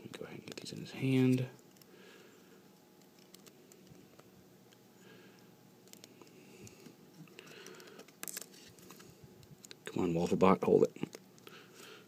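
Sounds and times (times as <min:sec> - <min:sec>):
plastic parts clicking and rubbing: 0:03.0 - 0:04.3, 0:05.8 - 0:09.8.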